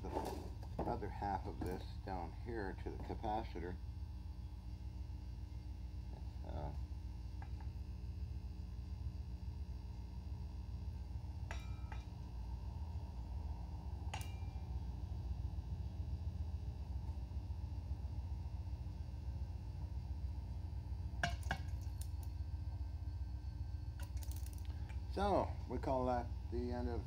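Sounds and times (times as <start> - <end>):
electrical equipment humming: 0.0 - 27.0.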